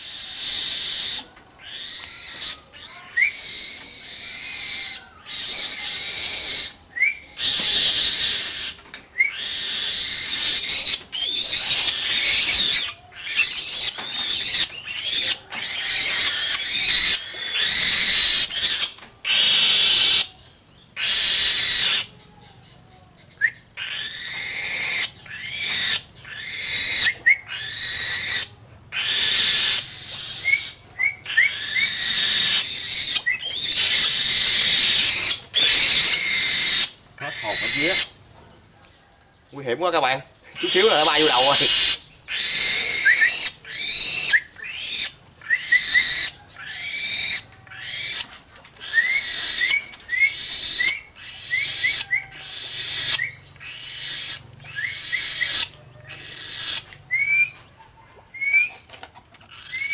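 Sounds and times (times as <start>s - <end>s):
bird of prey screeching: 0.0s - 38.2s, 39.1s - 59.9s.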